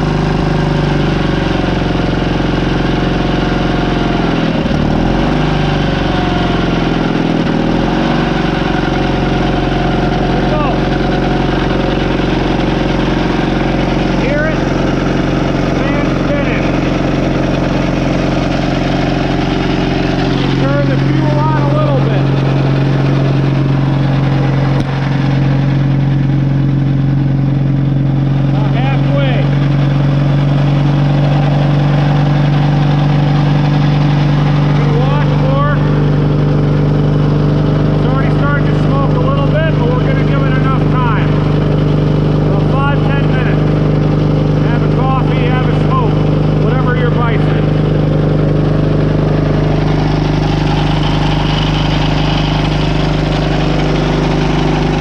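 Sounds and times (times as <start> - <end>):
strong low hum: 0.0 - 55.0
tractor engine running: 0.0 - 55.0.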